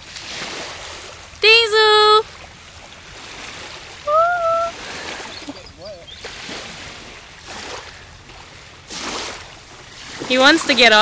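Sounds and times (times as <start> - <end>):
calm sea at shoreline: 0.0 - 11.0
wind: 0.0 - 11.0
high-pitched call: 4.1 - 4.8.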